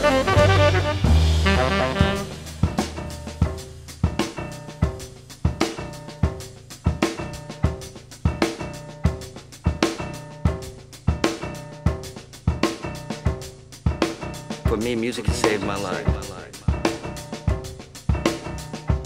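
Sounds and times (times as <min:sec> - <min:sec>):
drum kit busy pattern: 0:00.0 - 0:19.0
jazz band music: 0:00.0 - 0:19.0.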